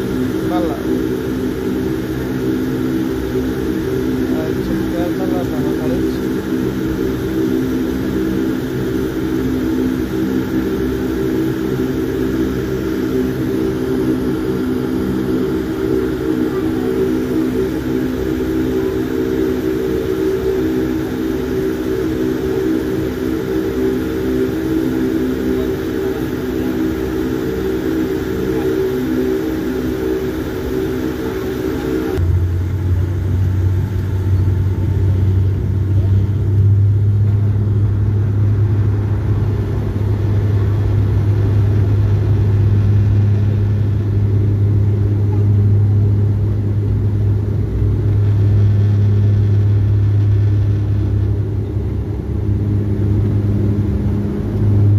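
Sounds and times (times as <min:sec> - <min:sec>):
aircraft engine and rolling drone: 0:00.0 - 0:54.9
deep steady hum: 0:00.0 - 0:54.9.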